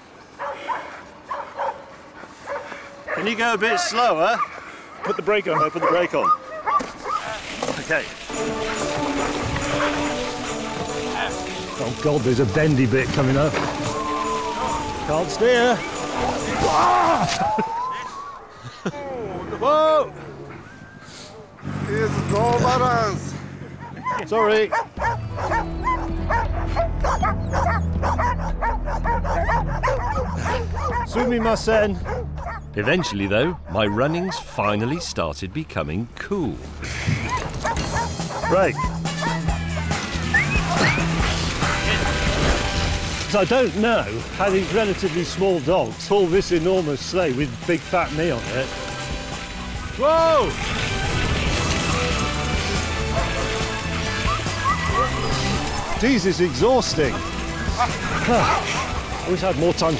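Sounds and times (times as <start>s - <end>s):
dogs yipping and whining: 0.4s - 7.5s, 13.2s - 18.9s, 23.8s - 35.0s, 37.1s - 42.8s, 49.4s - 56.2s, 57.1s - 59.3s
background music low notes: 7.5s - 18.0s, 19.0s - 36.8s, 37.4s - 59.9s.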